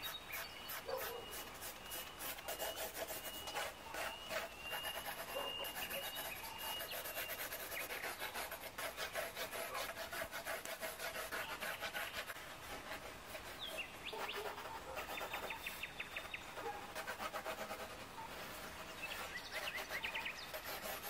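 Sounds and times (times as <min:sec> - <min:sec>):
pencil sketching on paper: 0:00.0 - 0:15.8, 0:16.6 - 0:21.0.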